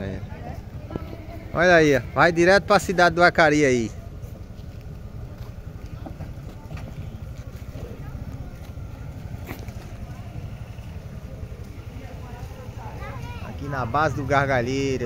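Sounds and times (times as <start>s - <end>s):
car engine idling: 0.0s - 15.0s
faint voices: 0.0s - 15.0s.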